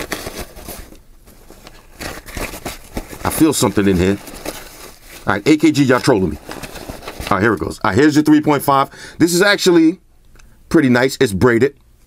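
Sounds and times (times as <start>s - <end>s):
cloth pouch rustling: 0.0s - 7.6s.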